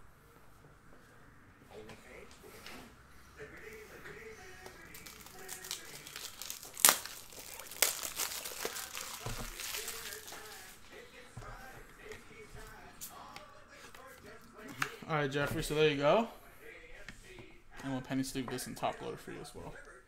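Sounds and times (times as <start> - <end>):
plastic crinkling and rustling: 4.7 - 10.8.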